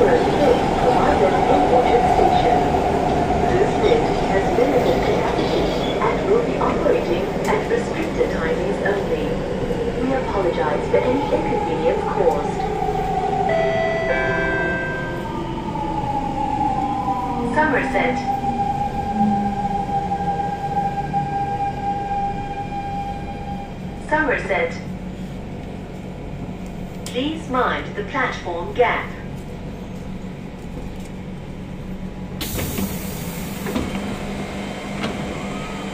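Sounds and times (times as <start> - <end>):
train humming: 0.0 - 35.9
high inverter tones: 18.7 - 20.4
train doors hissing open: 32.4 - 34.2.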